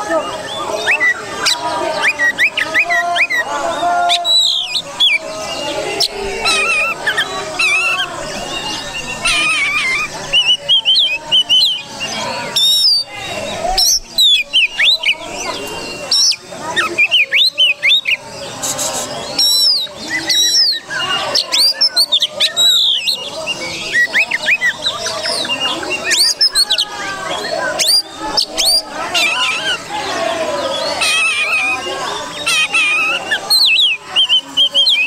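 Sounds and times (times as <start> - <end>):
bird singing whistles and chirps: 0.0 - 35.0.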